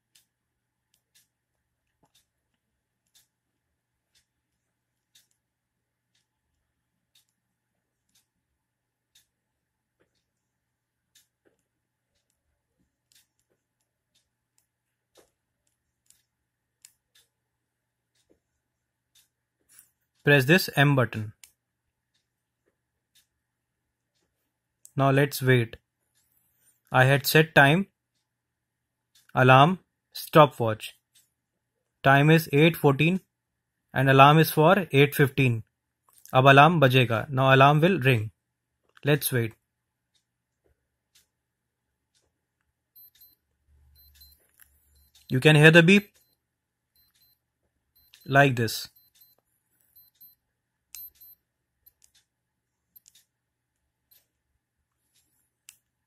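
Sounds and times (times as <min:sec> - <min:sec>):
digital clock alarm beeping: 0:43.0 - 0:52.2.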